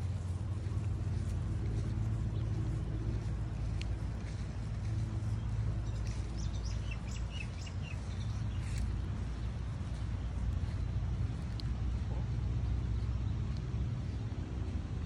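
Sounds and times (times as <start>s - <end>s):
low rumble: 0.0s - 15.0s.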